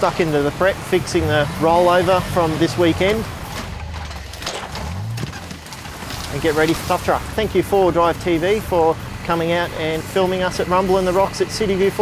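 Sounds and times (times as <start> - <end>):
vehicle engine revving: 0.0 - 12.0
knocks and clunks: 2.9 - 7.0.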